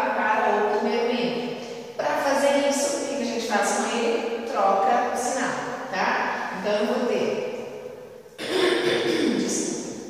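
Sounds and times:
woman speaking: 0.0 - 7.3, 8.4 - 9.8.

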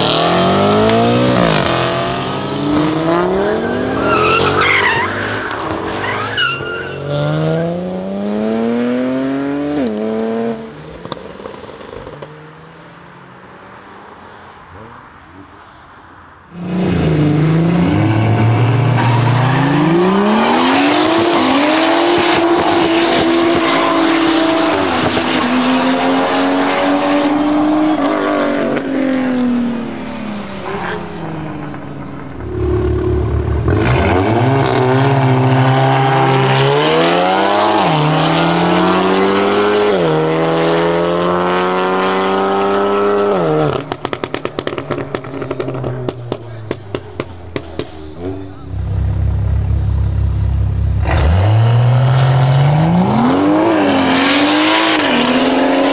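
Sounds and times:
car engine revving and accelerating: 0.0 - 6.3, 7.0 - 10.8, 16.6 - 55.9
exhaust crackling pops: 43.8 - 51.2.

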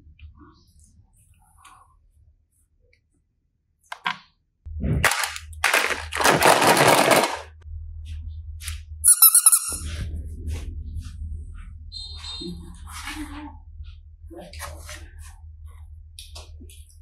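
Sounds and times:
plastic toy suitcases clattering: 5.0 - 7.6.

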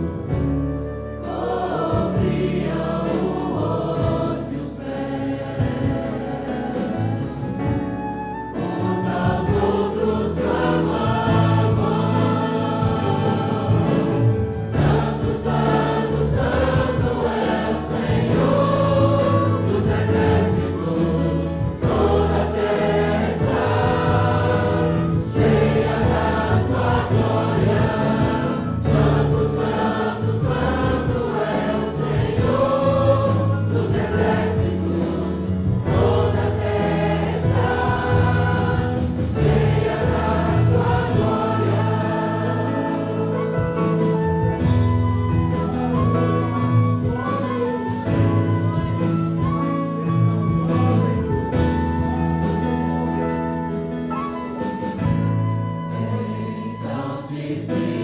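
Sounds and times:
keyboard accompaniment: 0.0 - 58.0
group singing a hymn: 1.2 - 46.2, 55.8 - 58.0.

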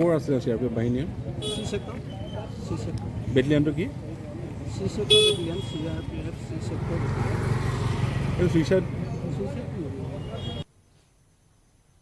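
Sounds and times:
people talking outdoors: 0.0 - 11.0.

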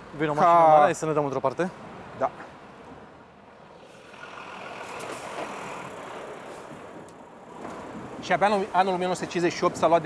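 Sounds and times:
tyres on cobblestones: 0.0 - 10.0
truck engine: 3.4 - 8.2.

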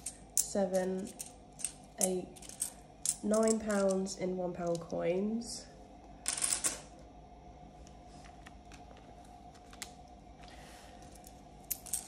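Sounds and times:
coins clattering on countertop: 0.0 - 4.0, 6.2 - 6.9, 11.2 - 12.0
coins clicking: 0.0 - 4.9, 6.2 - 6.8, 11.2 - 12.0.

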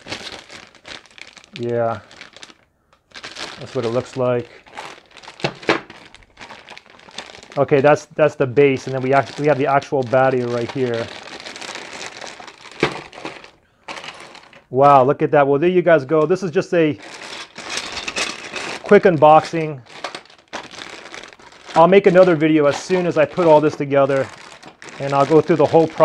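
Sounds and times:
plastic bags crinkling: 0.0 - 15.0, 15.6 - 26.0.

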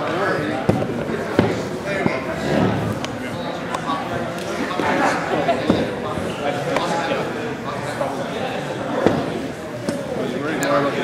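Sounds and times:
people talking in echoing hall: 0.0 - 11.0.

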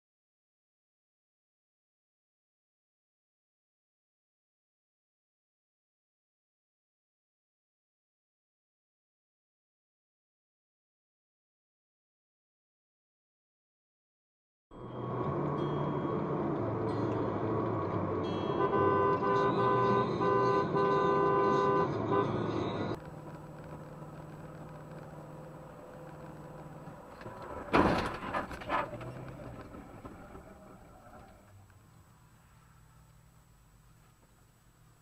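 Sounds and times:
road traffic noise: 14.8 - 35.0
car horn honking: 18.4 - 23.0.

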